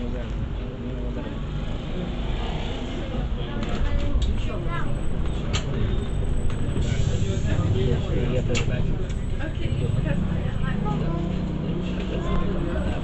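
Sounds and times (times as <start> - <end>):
bus engine rumble: 0.0 - 13.0.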